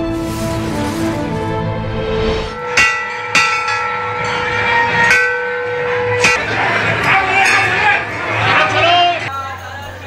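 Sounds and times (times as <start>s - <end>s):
temple bell ringing: 2.5s - 8.3s.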